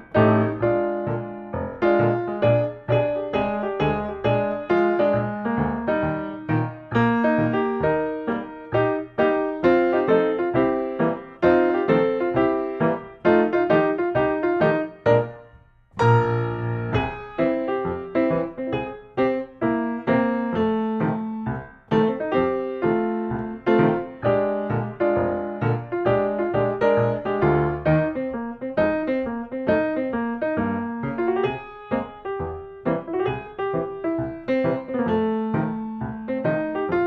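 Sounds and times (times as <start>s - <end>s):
ragtime piano: 0.0s - 37.0s.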